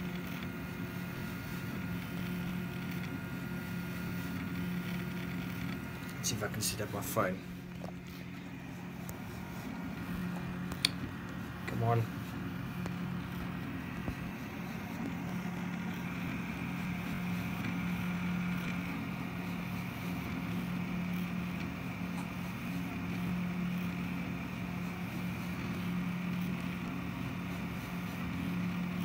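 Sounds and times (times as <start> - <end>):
cooling fan hum: 0.0 - 29.0
stepper motors whirring: 0.0 - 29.0.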